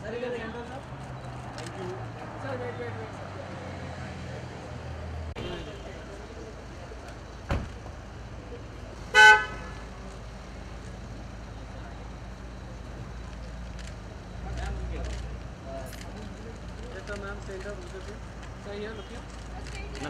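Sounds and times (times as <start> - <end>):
crowd noise: 0.0 - 20.0
low traffic noise: 0.0 - 20.0
car horn honk: 5.4 - 6.0, 9.1 - 9.8.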